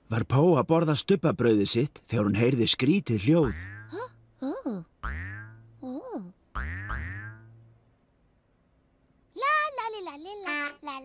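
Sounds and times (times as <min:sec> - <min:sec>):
cartoon boing sound effect: 0:03.5 - 0:04.2, 0:05.0 - 0:05.7, 0:06.5 - 0:07.6.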